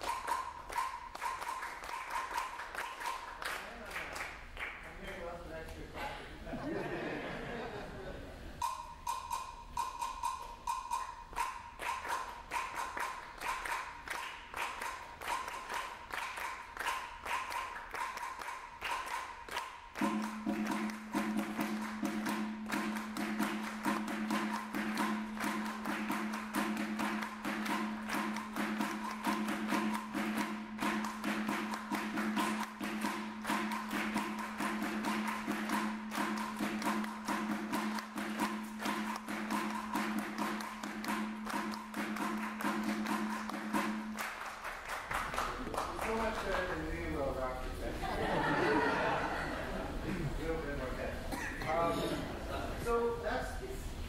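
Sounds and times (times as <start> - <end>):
congas and drums played fast: 0.0 - 4.4, 8.6 - 50.0.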